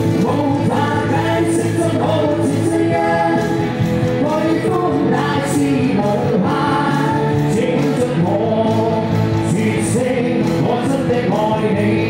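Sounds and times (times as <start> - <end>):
electric guitar: 0.0 - 12.0
keyboard: 0.0 - 12.0
lead vocal singing: 0.0 - 12.0.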